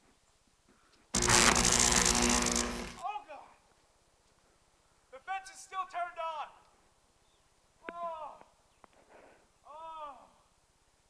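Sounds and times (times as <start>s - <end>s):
harsh electric buzz: 1.2s - 3.0s.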